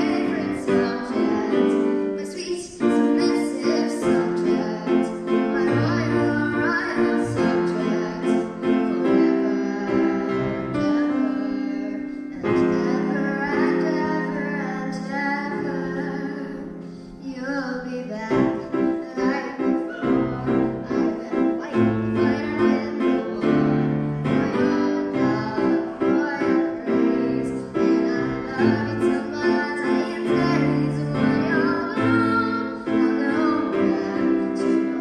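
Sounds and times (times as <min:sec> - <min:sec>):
grand piano chords: 0:00.0 - 0:35.0
person singing into microphone: 0:00.0 - 0:35.0.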